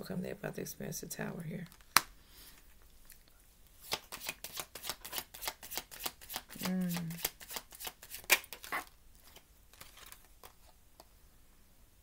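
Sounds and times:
cards being shuffled: 3.8 - 10.8.

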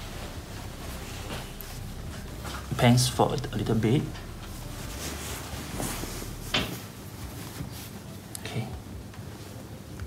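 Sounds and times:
cloth rustling: 0.0 - 8.3.

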